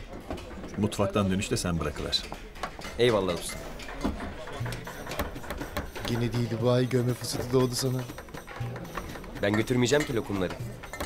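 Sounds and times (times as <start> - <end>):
utensils knocking on wood and pots: 0.0 - 11.0.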